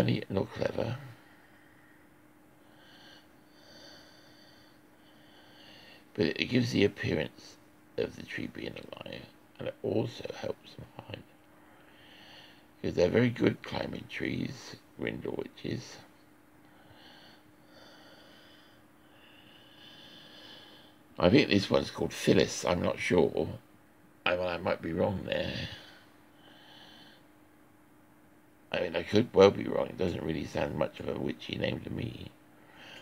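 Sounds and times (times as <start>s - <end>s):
low room hum: 0.0s - 33.0s
faint nose breathing: 1.2s - 6.1s, 11.6s - 12.7s, 16.6s - 21.0s, 25.5s - 27.3s, 32.6s - 33.0s.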